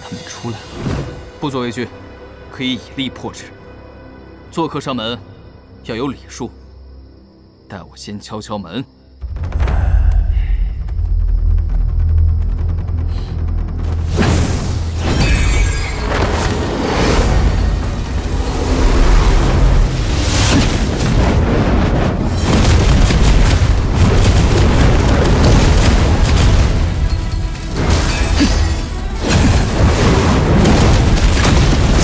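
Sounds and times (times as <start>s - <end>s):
dramatic music: 9.1s - 32.0s
deep booming rumble: 9.2s - 15.0s
magic blasts and crashing impacts: 13.9s - 32.0s.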